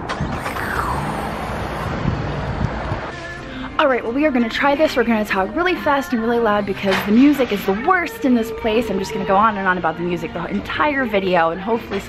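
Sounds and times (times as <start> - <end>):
falling vehicle whine: 0.2 - 3.5.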